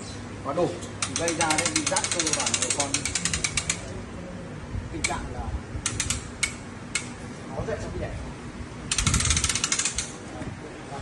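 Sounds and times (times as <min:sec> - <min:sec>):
ratchet clicking: 0:01.0 - 0:03.9, 0:05.8 - 0:07.1, 0:08.9 - 0:10.2.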